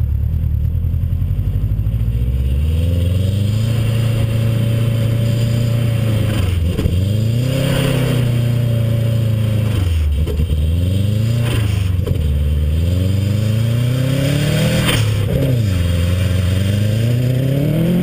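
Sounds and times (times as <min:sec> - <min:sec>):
car engine revving hard: 0:02.2 - 0:18.0.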